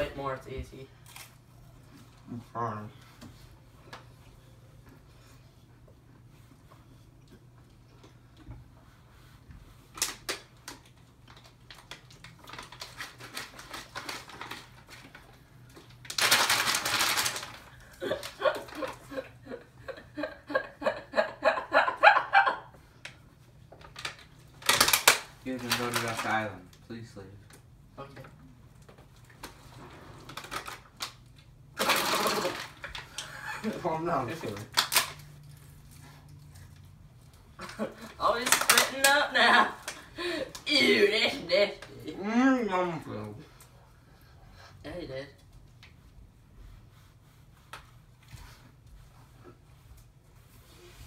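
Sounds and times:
crackers crunching: 0:09.9 - 0:19.1, 0:23.9 - 0:26.8, 0:29.2 - 0:33.8, 0:34.4 - 0:36.0.

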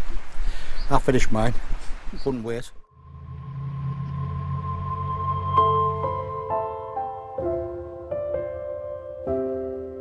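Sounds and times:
low drone: 0:02.8 - 0:08.1
steady higher tone: 0:02.8 - 0:09.0.

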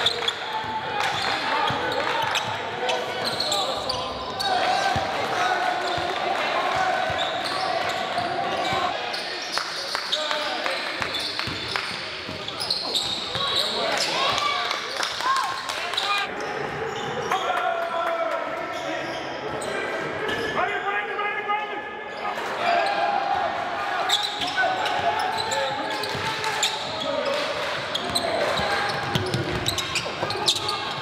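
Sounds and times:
sneakers squeaking: 0:00.0 - 0:10.4, 0:11.0 - 0:14.5, 0:15.5 - 0:17.4, 0:24.0 - 0:31.0.

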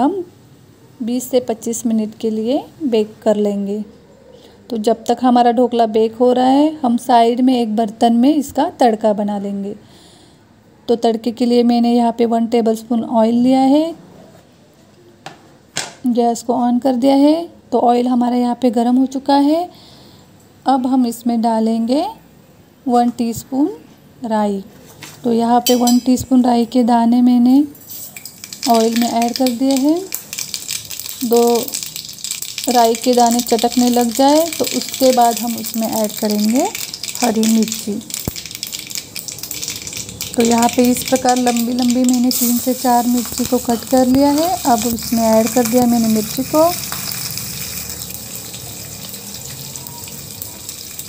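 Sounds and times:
seeds crackling in hot oil: 0:27.7 - 0:51.0
gas burner hiss: 0:42.2 - 0:49.4.

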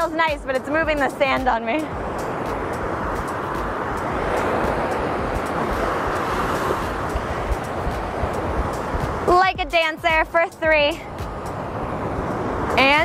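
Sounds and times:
ocean surf breaking: 0:00.0 - 0:13.0.

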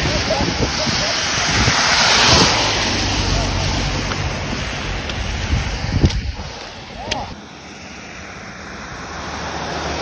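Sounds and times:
wind on microphone: 0:00.0 - 0:07.4.

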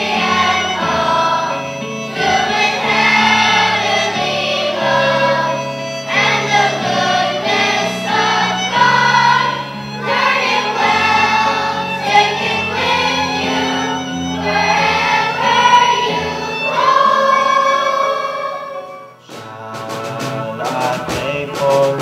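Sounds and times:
children's choir singing: 0:00.0 - 0:22.0
instrumental accompaniment: 0:00.0 - 0:22.0.

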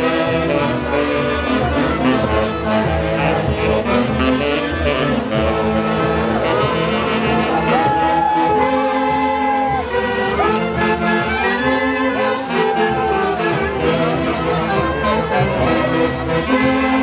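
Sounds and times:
folk band playing: 0:00.0 - 0:17.0.

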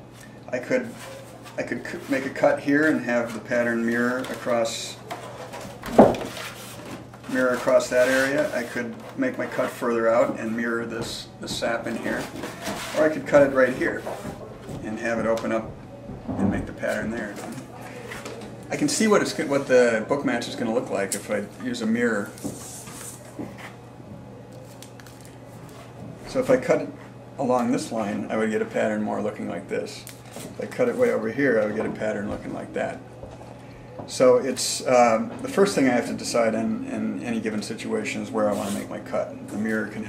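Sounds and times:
steady low hum: 0:00.0 - 0:40.0
wood veneer sheet handled: 0:00.7 - 0:15.0
knocks and handling noise: 0:04.2 - 0:07.6.

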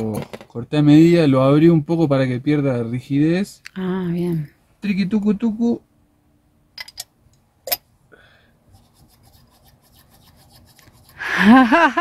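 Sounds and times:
faint rapid scratching: 0:08.7 - 0:11.2.

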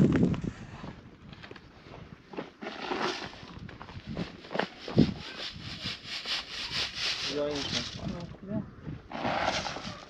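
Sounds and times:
shovel scraping sand: 0:02.6 - 0:03.5, 0:04.3 - 0:08.1, 0:09.1 - 0:10.0
sand rasping in a sieve: 0:04.3 - 0:08.1, 0:09.1 - 0:10.0.

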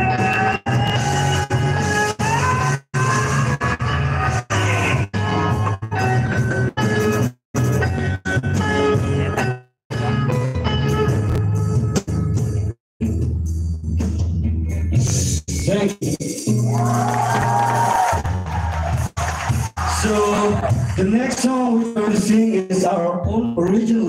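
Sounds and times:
live band music: 0:00.0 - 0:13.3.

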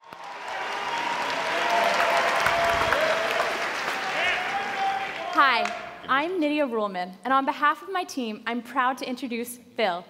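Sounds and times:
audience applauding: 0:00.0 - 0:06.0.

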